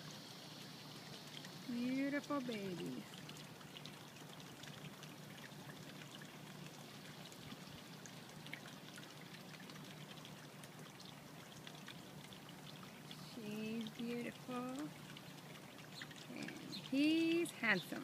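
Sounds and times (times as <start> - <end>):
trickle of running water: 0.0 - 18.0
water drips and splashes: 0.0 - 18.0.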